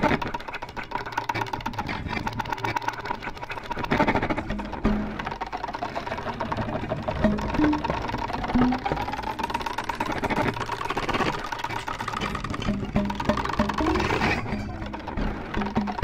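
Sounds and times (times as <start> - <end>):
violin with electronic effects: 1.4 - 16.0.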